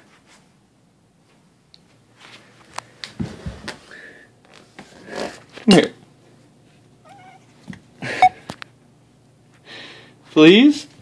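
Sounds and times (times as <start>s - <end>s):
cat meowing faintly: 7.0s - 7.5s.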